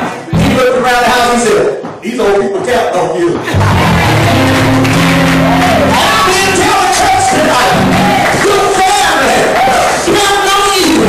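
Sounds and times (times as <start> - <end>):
man singing and shouting: 0.0 - 3.6, 5.8 - 11.0.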